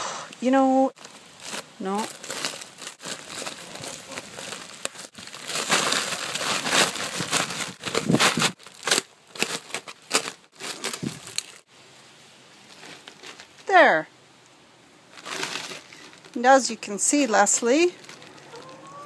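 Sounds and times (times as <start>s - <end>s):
plastic sack crinkling: 0.9s - 11.7s, 12.6s - 13.8s, 15.1s - 19.0s.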